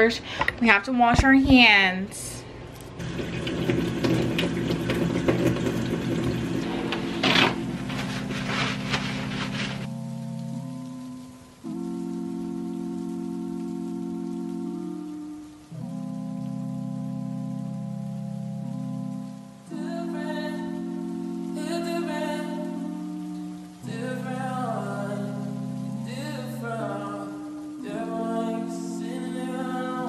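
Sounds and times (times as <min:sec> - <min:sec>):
soft music of held chords: 0:03.2 - 0:30.0.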